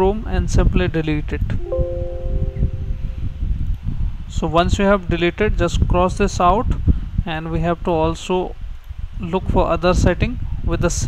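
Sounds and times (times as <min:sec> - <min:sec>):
warning chime chord: 0:01.6 - 0:03.6.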